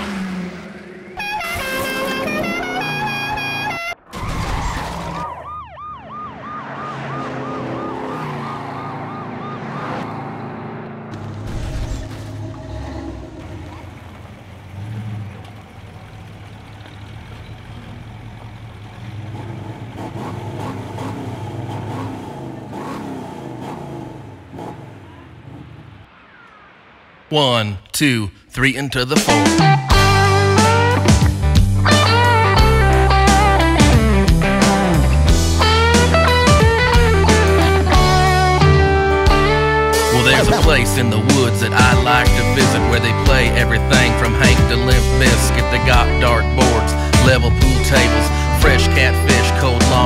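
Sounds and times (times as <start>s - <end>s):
police siren warbling: 0.0s - 11.1s, 39.4s - 40.9s
car engine: 0.0s - 27.3s, 28.5s - 50.0s
car sliding on gravel: 11.1s - 18.7s.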